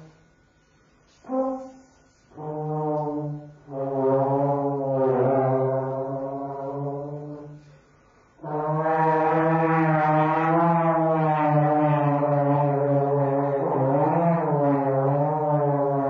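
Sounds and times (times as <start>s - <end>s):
trombone holding long low note: 1.2s - 7.6s, 8.4s - 16.0s.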